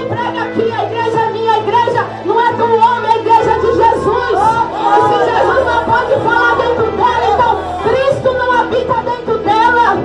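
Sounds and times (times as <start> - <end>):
overlapping voices: 4.4 - 8.6.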